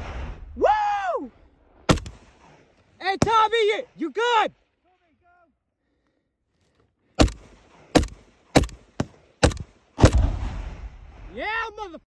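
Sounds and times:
rifle shots: 1.9s - 2.6s, 7.2s - 10.9s.

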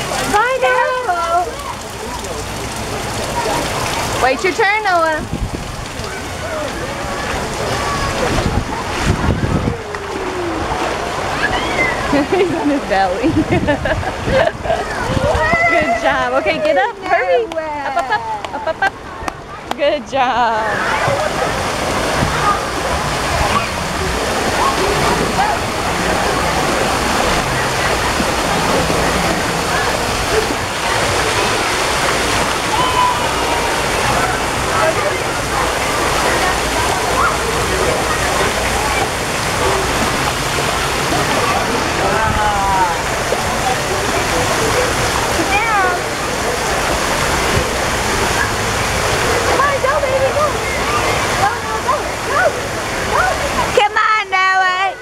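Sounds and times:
fountain water splashing: 0.0s - 55.0s
children's voices and squeals: 6.0s - 12.2s, 14.8s - 16.1s, 20.6s - 21.5s, 22.2s - 24.0s, 24.6s - 25.6s, 32.6s - 34.5s, 36.4s - 39.2s, 49.5s - 53.8s.

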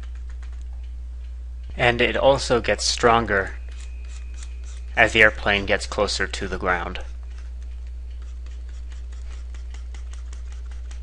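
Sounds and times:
faint irregular clicks: 0.0s - 1.9s, 7.0s - 11.0s
low electrical hum: 0.0s - 11.0s.

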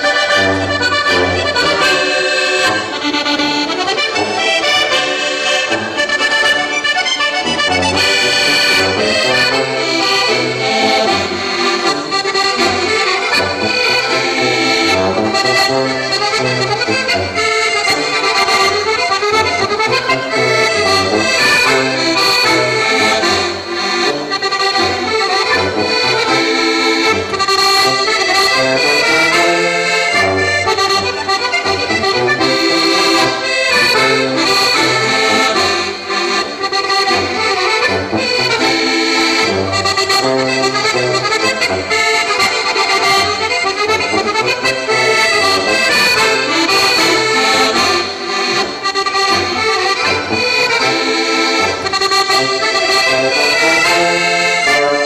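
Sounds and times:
accordions playing folk tune: 0.0s - 55.0s
tuba bass line: 0.0s - 55.0s.

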